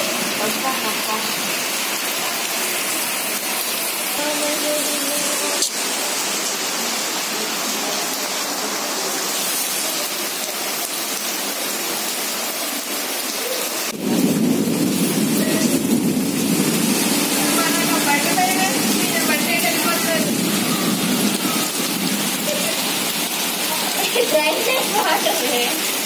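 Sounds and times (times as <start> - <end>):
heavy rain on flooded street: 0.0 - 26.0.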